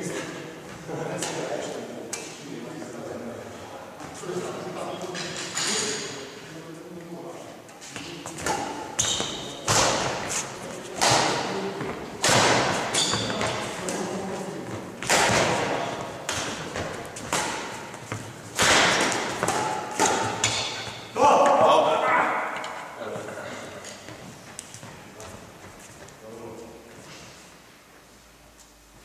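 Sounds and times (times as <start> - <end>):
badminton rackets hitting shuttlecock: 8.3 - 10.3, 11.0 - 14.2, 15.0 - 21.6.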